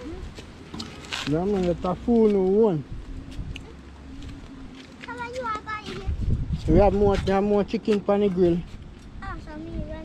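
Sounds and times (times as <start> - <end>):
child speaking: 5.0 - 6.3, 9.2 - 10.0.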